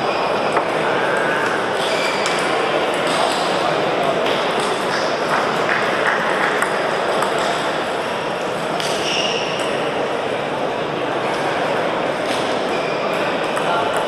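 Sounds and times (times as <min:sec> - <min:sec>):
murmur of many voices: 0:00.0 - 0:14.0
table tennis balls clicking: 0:04.2 - 0:07.6, 0:13.4 - 0:14.0.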